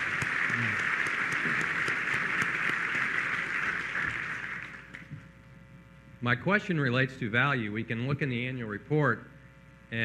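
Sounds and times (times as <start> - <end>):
audience applauding: 0.0 - 5.1.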